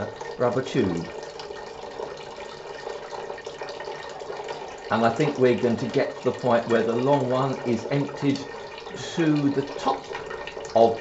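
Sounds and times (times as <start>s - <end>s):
water pouring and splashing into tank: 0.0s - 11.0s.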